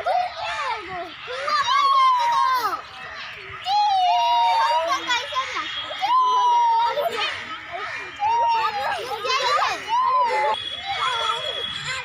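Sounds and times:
children's voices and laughter: 0.0s - 12.0s
metal swing squeaking: 6.3s - 12.0s.

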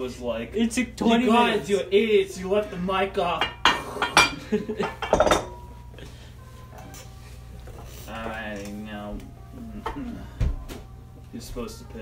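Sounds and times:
glass bowls clinking: 3.3s - 5.9s
people laughing: 4.2s - 5.2s.

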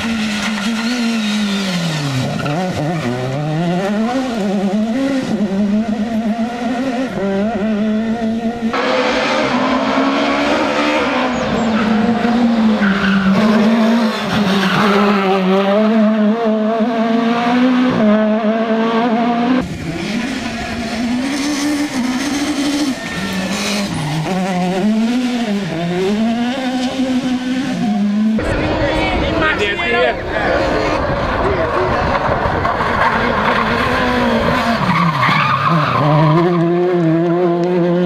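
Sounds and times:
rally car engine revving: 0.0s - 38.0s.

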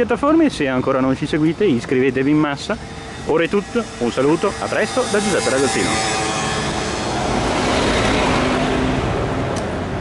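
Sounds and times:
bus driving past: 1.2s - 10.0s.

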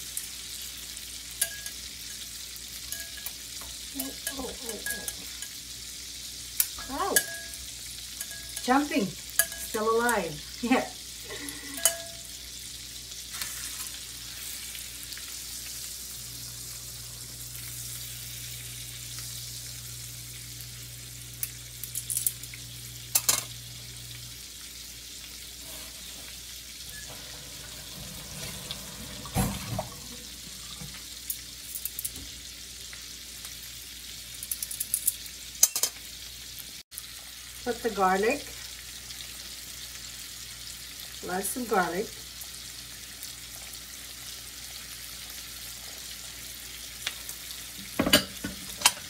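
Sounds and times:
fish sizzling in butter: 0.0s - 49.0s.

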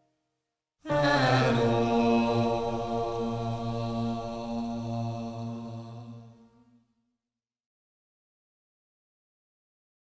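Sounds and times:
vocal quartet holding a chord: 0.9s - 6.6s.

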